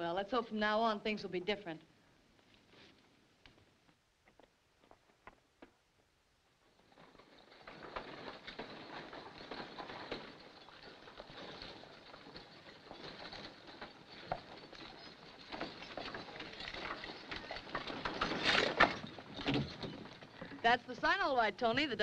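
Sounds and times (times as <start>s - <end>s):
wagon rattling: 6.6s - 22.0s
horse hoofbeats on dirt road: 7.4s - 22.0s.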